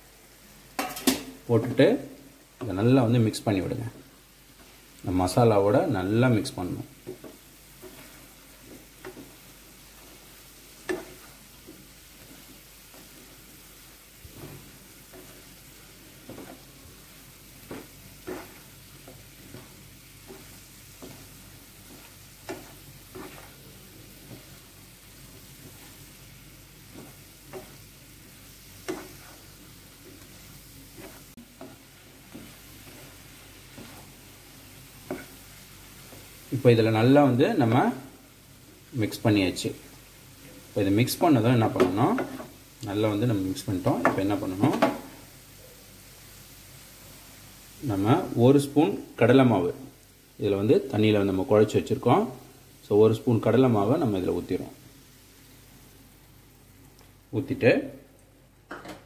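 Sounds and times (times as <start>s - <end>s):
faint sizzle in a pan: 0.0s - 59.0s
spatula scraping and tapping pan: 0.7s - 1.8s, 7.0s - 36.4s, 41.6s - 42.6s, 43.7s - 45.2s.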